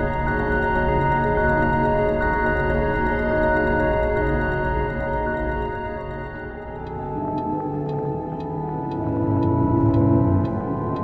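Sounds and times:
ambient electronic drone music: 0.0 - 11.0.

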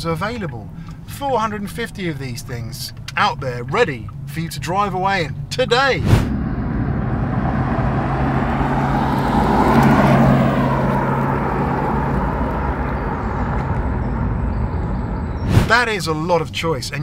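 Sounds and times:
car tyre noise on road: 6.0 - 15.8.

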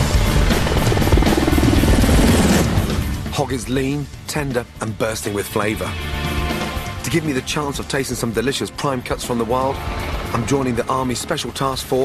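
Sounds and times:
helicopter rotor chopping: 0.0 - 3.3, 7.8 - 12.0
background music: 0.0 - 12.0.

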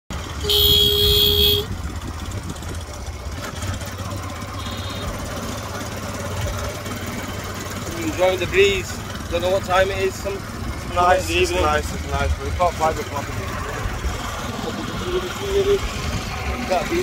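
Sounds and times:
wind and road noise: 0.1 - 17.0
vehicle horn blast: 0.4 - 1.8, 4.5 - 5.3.

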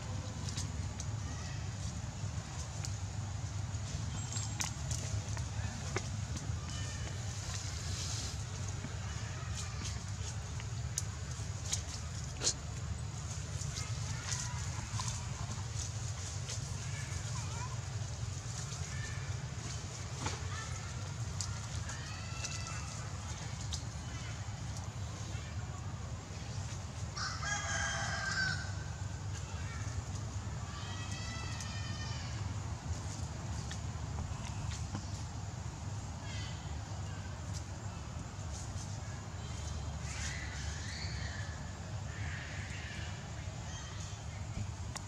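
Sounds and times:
rooster crowing: 27.2 - 28.8.

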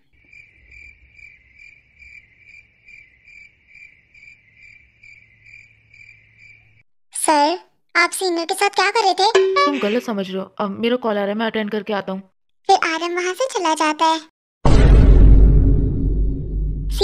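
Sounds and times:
cricket chirping: 0.1 - 6.8.

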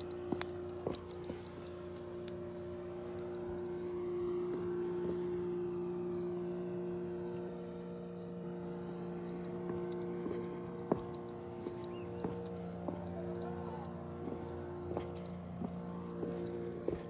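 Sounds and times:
crickets trilling: 0.0 - 17.0
steady low hum: 0.0 - 17.0.

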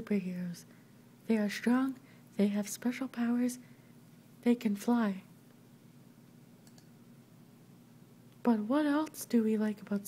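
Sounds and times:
faint quick clicks: 6.6 - 6.9.

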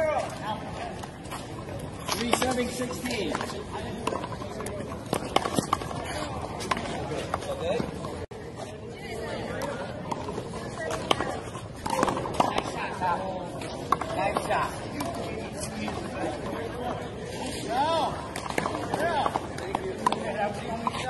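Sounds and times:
people chattering: 0.0 - 21.0.

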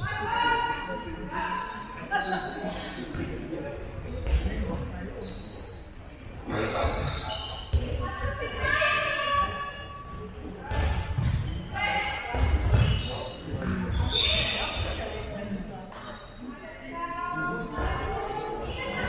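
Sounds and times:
ball bouncing on hall floor: 6.5 - 8.6, 12.3 - 15.0.

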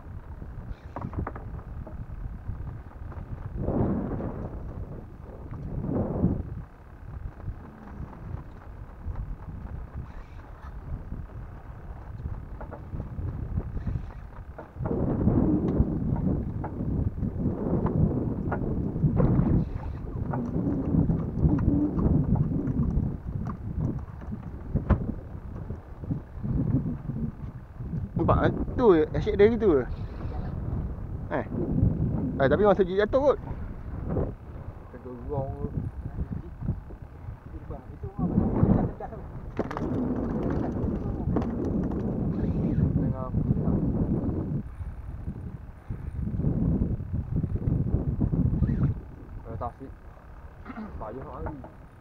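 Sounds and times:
wind buffeting microphone: 0.0 - 52.0.

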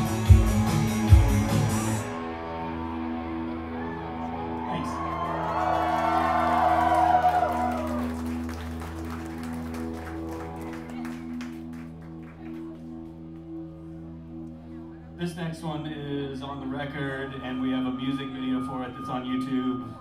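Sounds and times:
low drone of guitars and keyboard: 0.0 - 20.0
scattered claps: 7.7 - 13.5
wavering guitar tones: 16.4 - 20.0.

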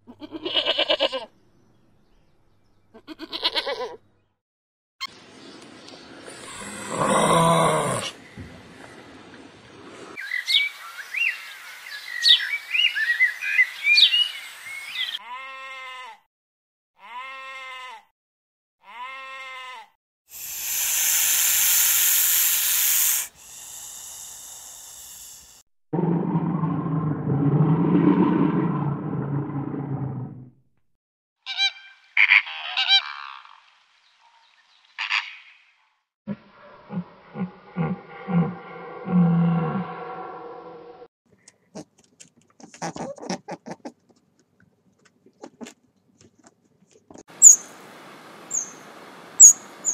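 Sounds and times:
bleat-like animal calls: 0.1 - 1.3, 3.0 - 4.0, 15.2 - 16.3, 17.0 - 18.1, 18.8 - 19.9
loud hissing burst: 20.3 - 25.6
bears growling in water: 26.0 - 30.6
high bird chirps: 47.4 - 47.7, 48.5 - 48.8.

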